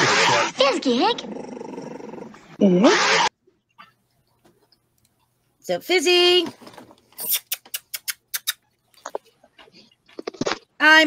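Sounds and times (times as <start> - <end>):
dog-like animal cries: 2.8 - 3.3.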